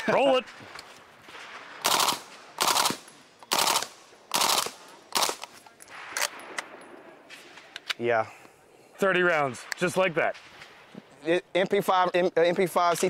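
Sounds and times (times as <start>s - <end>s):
suppressed carbine firing bursts: 0.4s - 7.6s.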